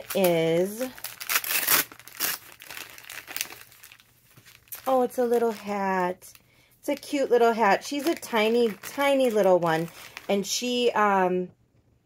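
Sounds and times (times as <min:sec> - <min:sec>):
paper wrapping crinkling and tearing: 0:00.0 - 0:10.5.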